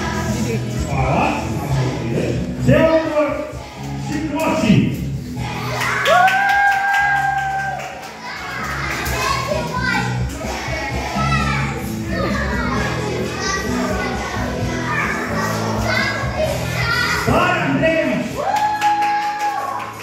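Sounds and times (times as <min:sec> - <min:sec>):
children chattering and calling: 0:00.0 - 0:04.4, 0:05.2 - 0:06.1, 0:07.9 - 0:17.7
background music with bass line: 0:00.0 - 0:20.0.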